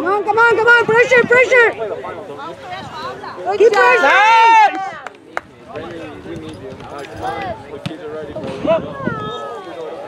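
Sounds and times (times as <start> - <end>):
people shouting: 3.5 - 5.0.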